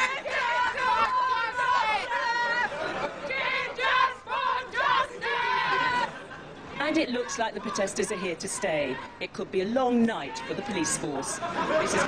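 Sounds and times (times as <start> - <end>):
protesters shouting and chanting: 0.0 - 12.0.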